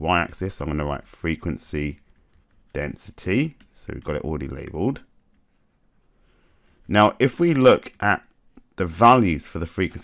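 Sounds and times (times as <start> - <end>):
man speaking: 0.0 - 2.0, 2.7 - 5.2, 6.8 - 10.0
stylus scratching on tablet screen: 0.6 - 9.1.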